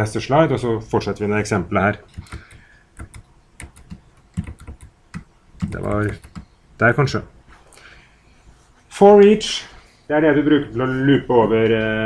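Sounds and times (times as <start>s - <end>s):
computer keyboard keys clicking: 2.1s - 6.5s.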